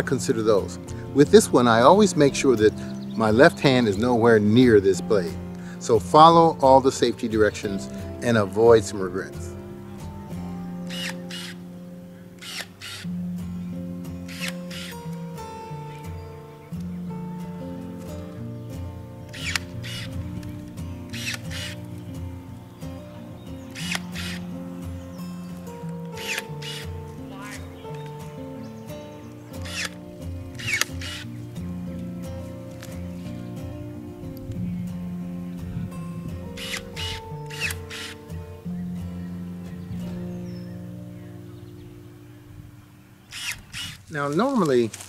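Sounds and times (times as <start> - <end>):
background music: 0.0 - 45.0
pruner snipping branches: 10.4 - 13.2, 14.2 - 17.0, 17.6 - 34.7, 36.4 - 38.4, 43.3 - 45.0.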